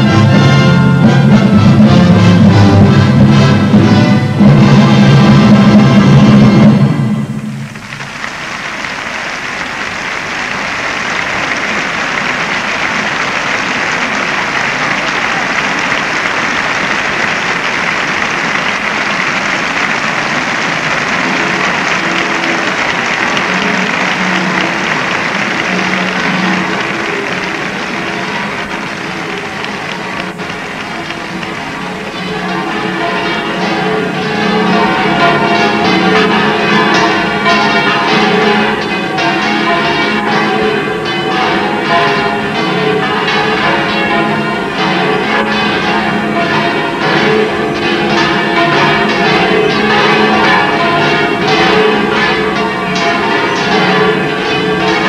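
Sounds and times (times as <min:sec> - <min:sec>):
church bells ringing: 0:00.0 - 0:55.0
crowd applauding: 0:07.4 - 0:55.0.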